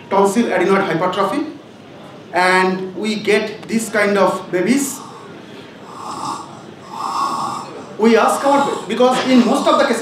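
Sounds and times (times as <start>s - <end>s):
child snoring: 4.9s - 8.9s.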